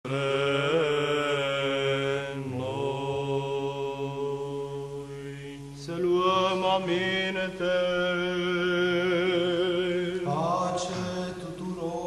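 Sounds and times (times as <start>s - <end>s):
chanting melody: 0.1s - 12.0s
sustained vocal drone: 0.1s - 12.0s.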